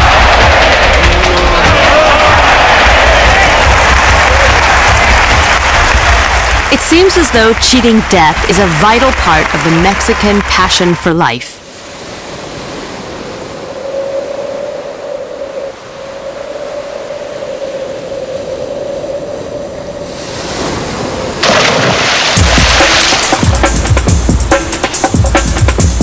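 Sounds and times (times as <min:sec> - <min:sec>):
electronic music with bass beat: 0:00.0 - 0:06.2, 0:22.4 - 0:26.0
ocean surf washing: 0:00.0 - 0:25.8
rushing sound: 0:21.2 - 0:25.2.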